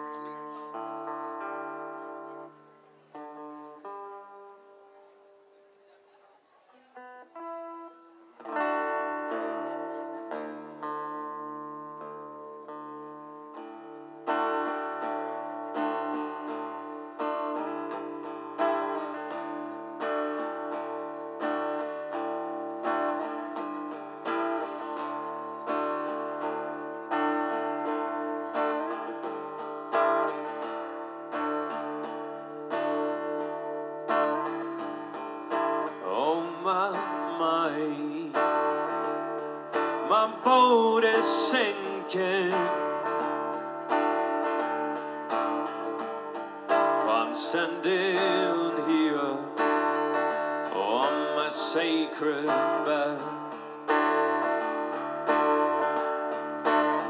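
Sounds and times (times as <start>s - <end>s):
acoustic guitar: 0.0s - 57.0s
man singing: 35.9s - 43.3s, 47.0s - 50.0s, 50.6s - 53.9s.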